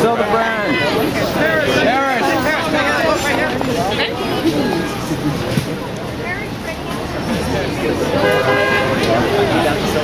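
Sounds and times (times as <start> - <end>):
crowd chatter: 0.0 - 10.0
steady horn tone: 8.2 - 9.1.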